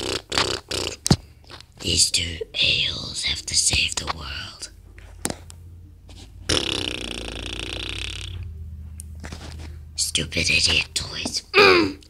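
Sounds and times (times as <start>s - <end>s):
person burping: 0.0s - 1.2s, 6.5s - 8.5s, 11.5s - 12.0s.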